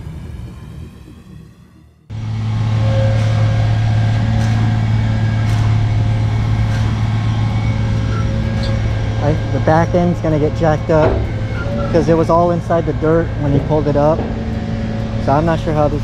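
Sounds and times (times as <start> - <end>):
truck engine humming: 0.0 - 16.0
music: 11.2 - 16.0.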